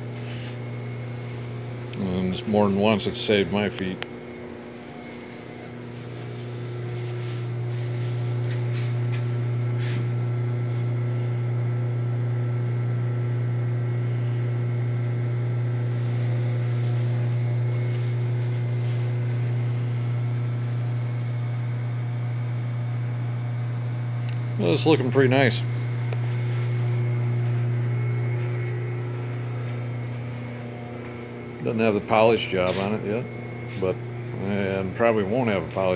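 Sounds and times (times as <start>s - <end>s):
machine motor humming: 0.0s - 35.9s.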